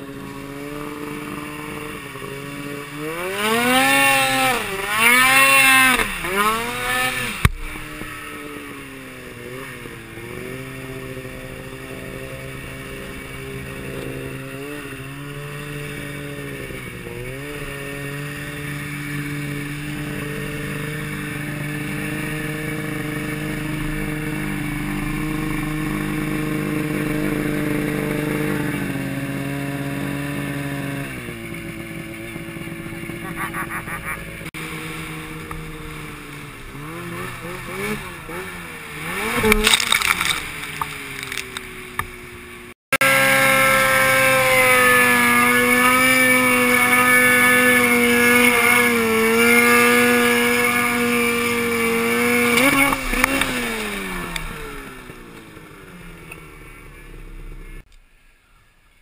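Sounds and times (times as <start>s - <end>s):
snowmobile engine revving: 0.0s - 57.9s.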